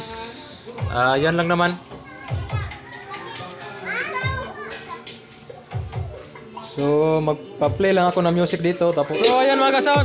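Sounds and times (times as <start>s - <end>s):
faint music with bass hits: 0.0s - 10.0s
children's voices: 1.8s - 7.0s.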